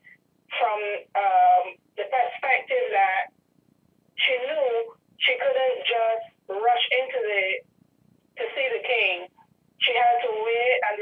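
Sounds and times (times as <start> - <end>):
person speaking over telephone: 0.5 - 3.3, 4.2 - 7.6, 8.4 - 11.0.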